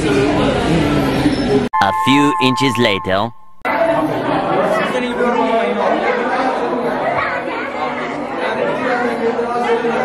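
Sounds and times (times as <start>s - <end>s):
chatter of people talking: 3.7s - 10.0s.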